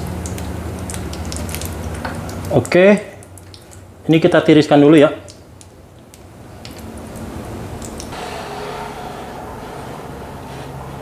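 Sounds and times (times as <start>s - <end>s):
frying oil bubbling: 0.0s - 8.2s.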